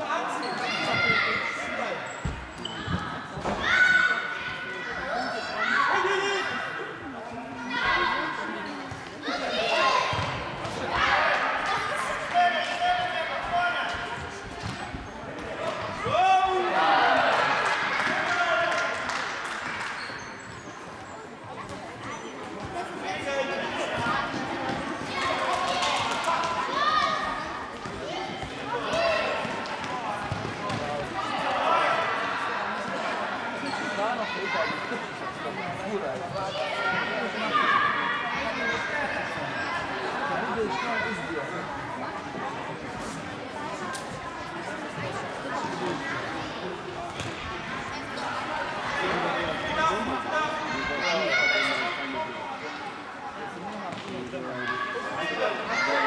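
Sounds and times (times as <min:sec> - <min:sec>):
voices echoing in hall: 0:00.0 - 0:56.0
children and spectators shouting: 0:25.1 - 0:27.4
ball bouncing on hall floor: 0:27.8 - 0:31.2.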